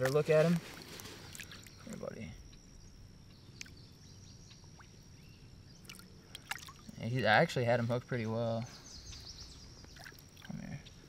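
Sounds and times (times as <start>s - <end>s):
small splashes or drips: 0.0s - 2.0s, 4.5s - 5.1s, 5.7s - 7.0s, 9.8s - 10.7s
river water splashing and trickling: 0.0s - 2.1s, 4.5s - 7.6s, 9.8s - 10.7s.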